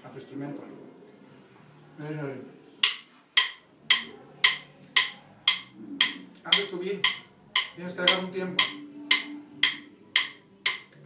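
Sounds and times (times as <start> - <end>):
drum stick strokes: 2.8 - 11.0.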